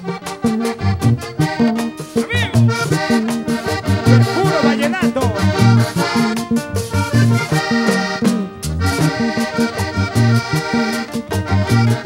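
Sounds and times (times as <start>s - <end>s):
button accordion melody: 0.0s - 12.0s
bass line: 2.2s - 12.0s.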